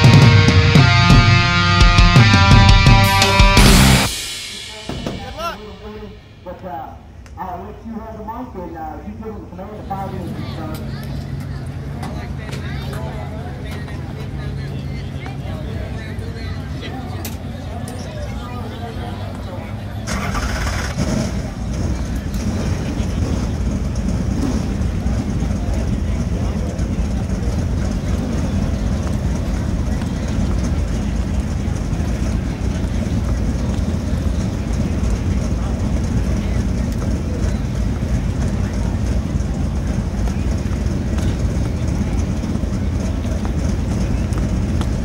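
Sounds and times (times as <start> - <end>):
race car engines rumbling: 0.0 - 45.0.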